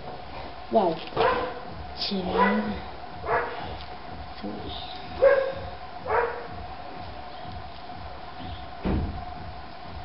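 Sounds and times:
small dog barking: 0:01.2 - 0:01.6, 0:02.3 - 0:03.6, 0:05.2 - 0:06.5.

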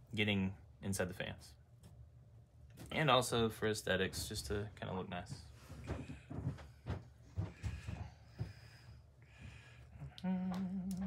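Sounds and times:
soft knocks and rustles of handling: 0:03.9 - 0:08.7.

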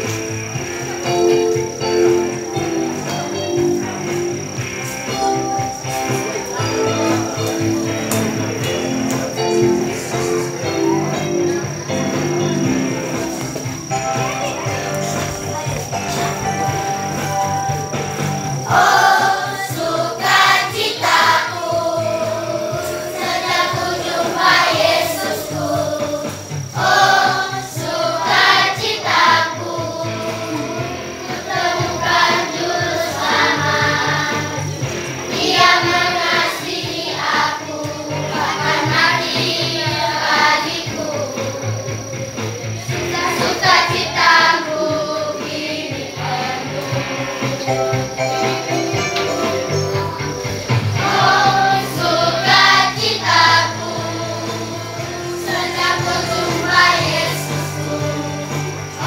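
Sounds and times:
children's choir singing: 0:00.0 - 0:59.0
instrumental backing: 0:00.0 - 0:59.0
musical accompaniment with bass: 0:00.0 - 0:59.0.

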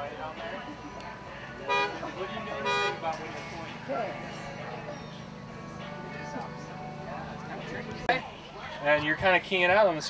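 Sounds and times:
truck horn honking: 0:01.6 - 0:03.2.

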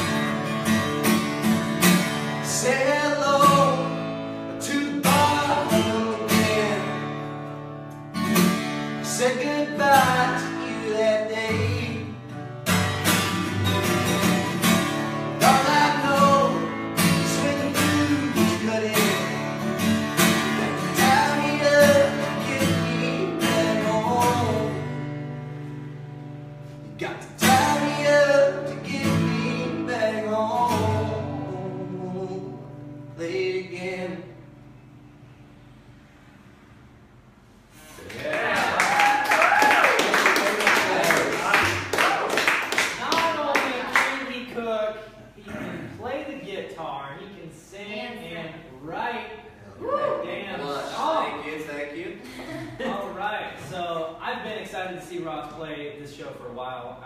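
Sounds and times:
acoustic guitar strumming: 0:00.0 - 0:38.0
man singing: 0:02.4 - 0:07.1, 0:09.0 - 0:12.2, 0:15.4 - 0:19.7, 0:20.4 - 0:25.0, 0:27.2 - 0:34.4.

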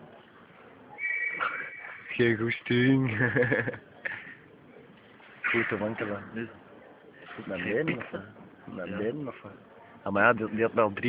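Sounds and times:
high whistle tone: 0:01.0 - 0:02.3.

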